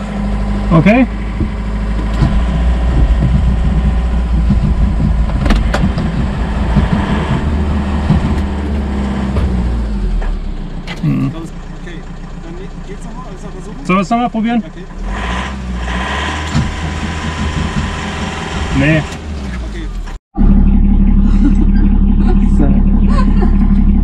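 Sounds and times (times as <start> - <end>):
diesel engine cranking: 0.0 - 24.0.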